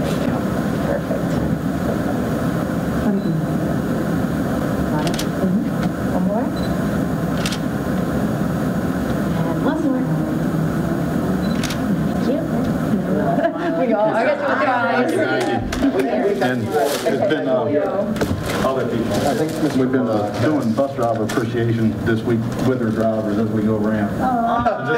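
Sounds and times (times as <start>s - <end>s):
murmur of people talking: 0.0s - 24.9s.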